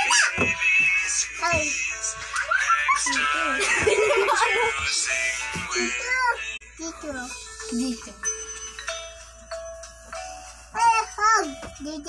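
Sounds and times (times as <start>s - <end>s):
music from phone speaker: 0.0s - 12.0s
held chime-like notes: 5.9s - 12.0s.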